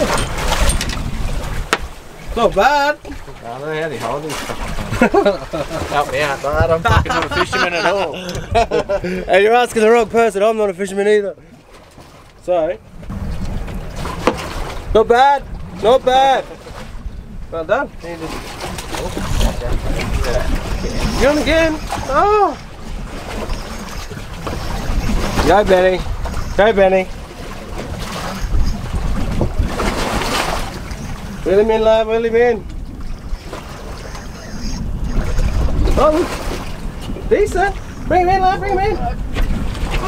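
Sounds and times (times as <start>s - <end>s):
wind buffeting microphone: 0.0s - 10.8s, 12.8s - 40.0s
water rumbling against hull: 0.0s - 40.0s.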